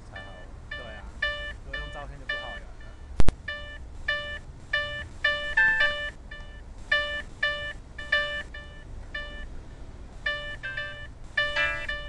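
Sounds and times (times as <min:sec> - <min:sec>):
short synthesized electronic notes: 0:10.3 - 0:12.0.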